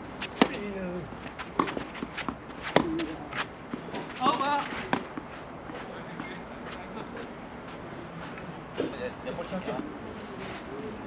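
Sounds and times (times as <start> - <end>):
racket striking ball: 0.2 - 0.8, 1.6 - 5.3
quick footsteps on court: 1.2 - 8.9.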